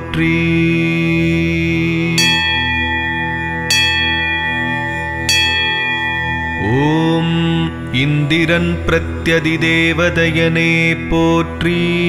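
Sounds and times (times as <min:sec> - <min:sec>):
steady musical drone: 0:00.0 - 0:12.0
bell strikes ringing: 0:02.2 - 0:08.2.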